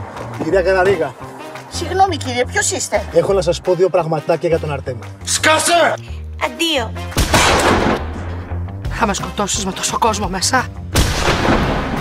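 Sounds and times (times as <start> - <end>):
background music: 0.0 - 12.0
shotgun blast: 7.2 - 8.3, 11.0 - 12.0.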